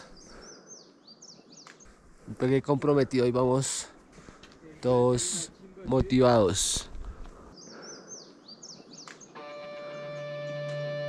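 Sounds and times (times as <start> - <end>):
faint bird song: 0.0 - 10.6.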